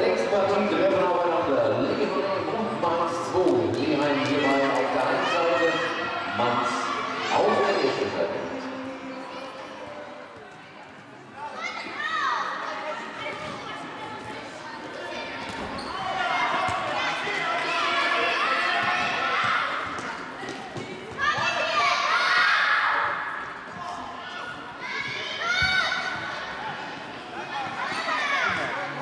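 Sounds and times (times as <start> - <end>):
children shouting: 21.1 - 23.3, 24.1 - 26.7.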